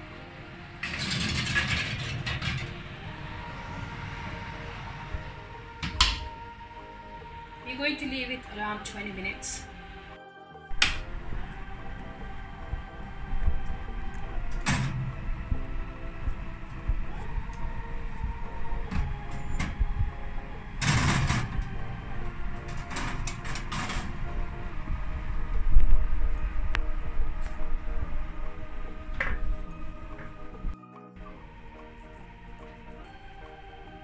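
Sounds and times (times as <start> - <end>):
background music: 0.0 - 34.0
metal tin scraping on oven rack: 0.8 - 3.0.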